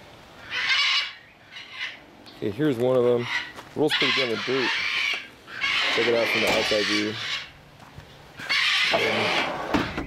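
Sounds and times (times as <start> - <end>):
parrots squawking: 0.4 - 2.0, 3.0 - 7.6, 8.4 - 10.0.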